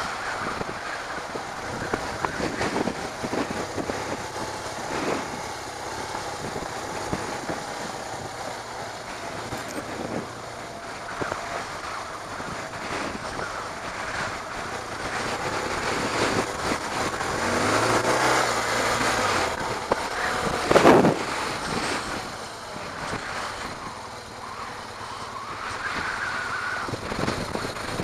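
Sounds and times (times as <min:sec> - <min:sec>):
motorcycle engine: 0:00.0 - 0:28.0
wind buffeting microphone: 0:00.0 - 0:28.0.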